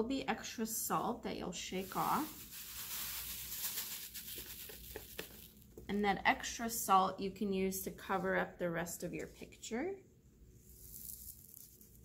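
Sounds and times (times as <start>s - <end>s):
paper rustling: 1.8s - 5.6s
salt sliding off paper: 1.8s - 5.6s, 10.7s - 12.0s.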